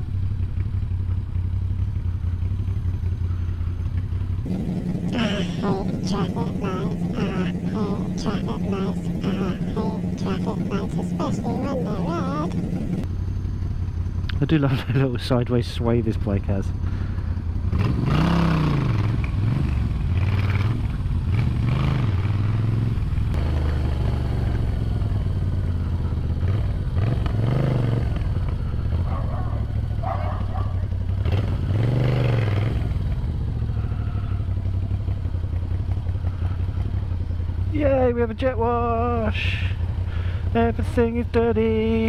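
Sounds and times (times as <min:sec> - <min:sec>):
motorcycle engine revving: 0:00.0 - 0:14.2, 0:16.8 - 0:38.1.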